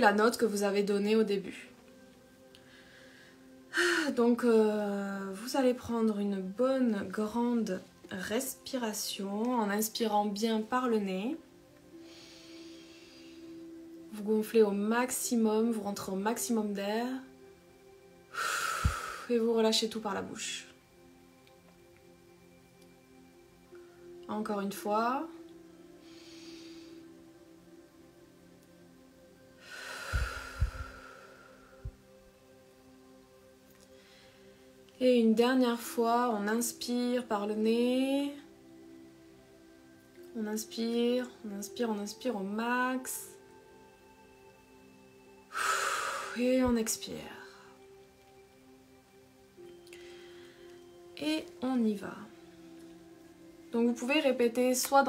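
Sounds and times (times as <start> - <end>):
faint background music: 0.0 - 55.0
woman speaking: 51.2 - 52.4.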